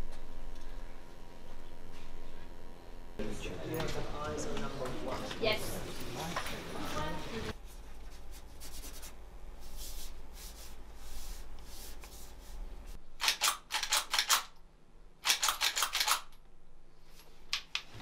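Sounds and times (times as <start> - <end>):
shotgun metallic clicks: 15.2 - 16.4.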